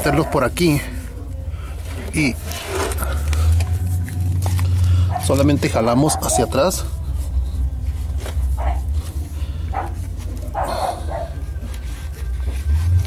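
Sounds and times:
dog barking: 0.0s - 0.6s, 5.0s - 6.8s, 8.6s - 9.0s, 9.7s - 11.5s
steady low rumble: 1.1s - 13.0s.

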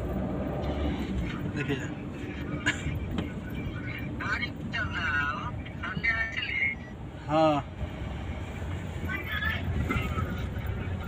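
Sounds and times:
road and engine rumble in car: 0.0s - 11.0s
voices: 9.0s - 11.0s.

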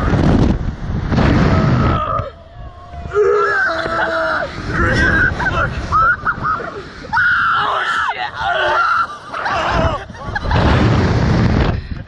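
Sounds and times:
men screaming in fright: 1.3s - 10.5s.

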